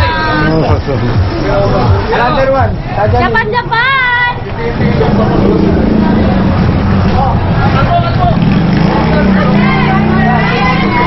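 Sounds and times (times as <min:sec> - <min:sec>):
people's voices: 0:00.0 - 0:11.0
vehicle engine rumbling: 0:00.0 - 0:11.0.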